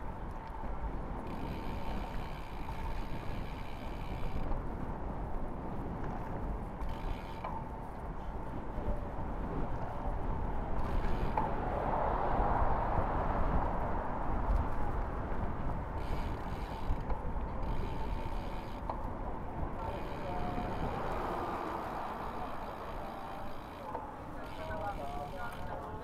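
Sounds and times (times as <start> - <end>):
wind rush over microphone: 0.0 - 24.8
tyres rumbling on tarmac: 7.8 - 26.0.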